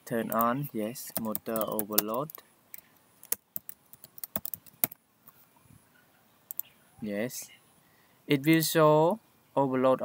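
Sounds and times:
keyboard key clicks: 0:01.1 - 0:02.4, 0:03.2 - 0:05.0.

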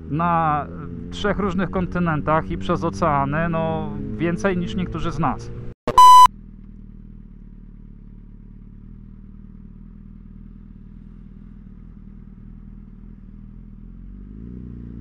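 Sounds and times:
test-pattern beep: 0:05.9 - 0:06.3
motorcycle engine idling: 0:06.7 - 0:14.1.

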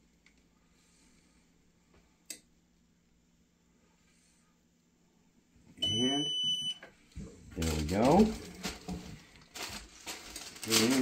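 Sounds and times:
faint low hum: 0:00.0 - 0:11.0
high steady timer beep: 0:05.8 - 0:06.8.

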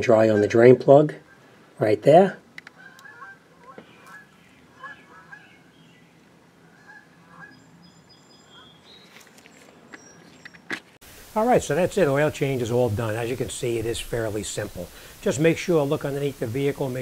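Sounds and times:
faint short bird calls: 0:02.7 - 0:05.8.

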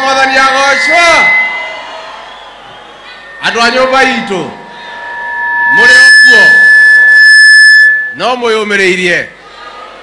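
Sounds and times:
high-pitched feedback tone: 0:00.0 - 0:08.6.

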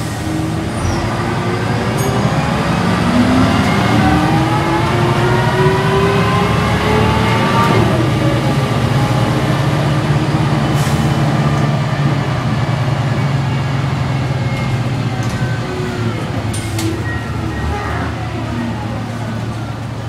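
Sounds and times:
bus diesel engine: 0:00.0 - 0:20.0
road noise: 0:00.0 - 0:20.0.

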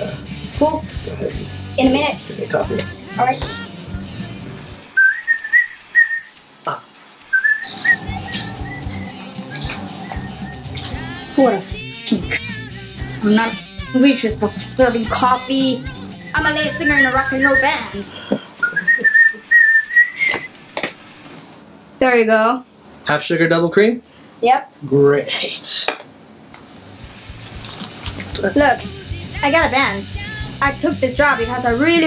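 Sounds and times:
man whistling a tune: 0:05.0 - 0:06.3, 0:07.3 - 0:11.1, 0:18.6 - 0:20.5.

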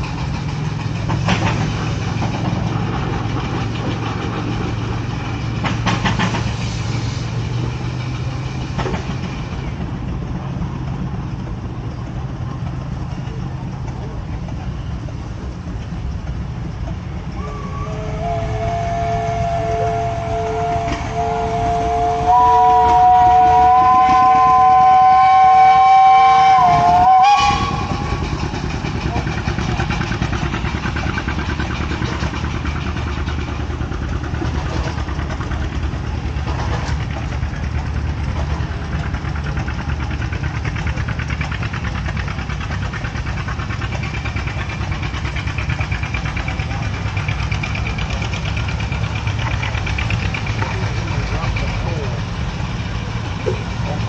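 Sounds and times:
engines running: 0:00.0 - 0:54.0
steam whistle chord: 0:17.4 - 0:28.4.

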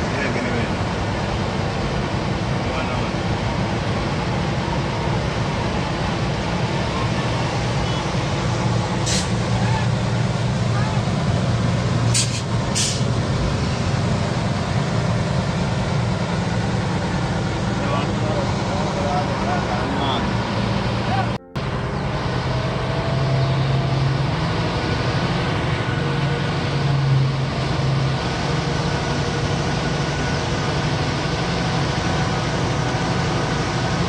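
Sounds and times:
road noise: 0:00.0 - 0:34.0
vehicle engine drone: 0:00.0 - 0:34.0.

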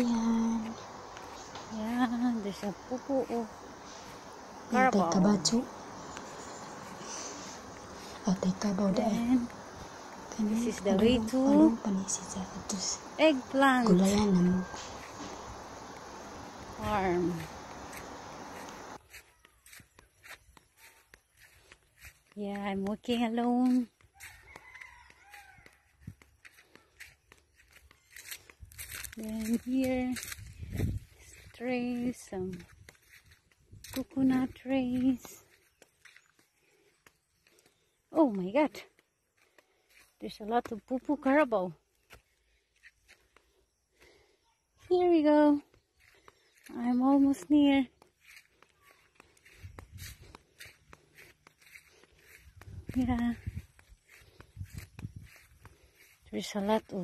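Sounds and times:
footsteps through grass: 0:00.0 - 0:37.9, 0:45.1 - 0:57.0
rooster crowing: 0:14.0 - 0:16.7, 0:24.1 - 0:26.1.

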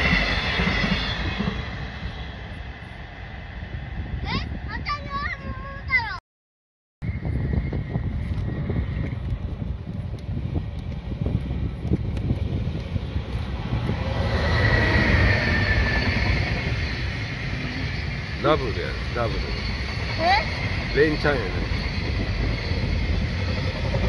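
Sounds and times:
locomotive whine: 0:00.0 - 0:04.2, 0:07.0 - 0:24.0
freight train passing: 0:00.0 - 0:06.0, 0:07.1 - 0:24.0
wind buffeting microphone: 0:00.0 - 0:06.2, 0:07.0 - 0:24.0.

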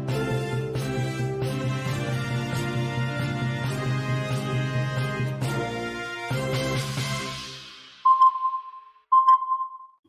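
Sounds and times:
electronic beeps: 0:08.1 - 0:10.0.

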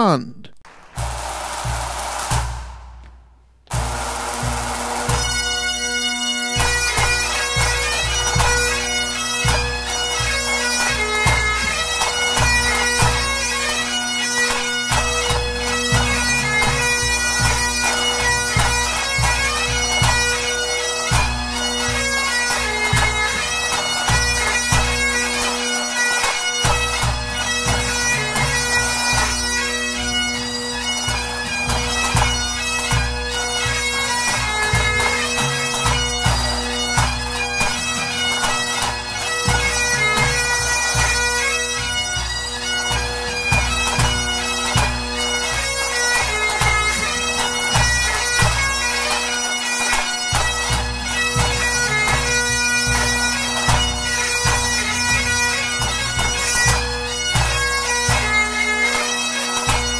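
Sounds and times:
bagpipes playing: 0:04.1 - 0:59.9.

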